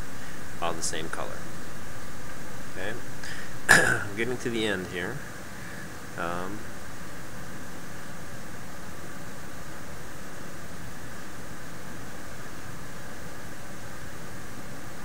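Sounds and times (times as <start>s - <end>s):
steady background hiss: 0.0s - 15.0s.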